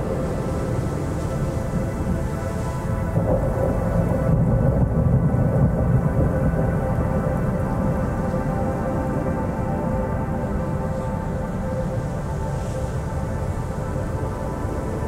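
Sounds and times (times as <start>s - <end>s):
thunder rumbling: 0.0s - 10.6s
rain: 0.0s - 15.0s
sustained musical drone: 0.0s - 15.0s.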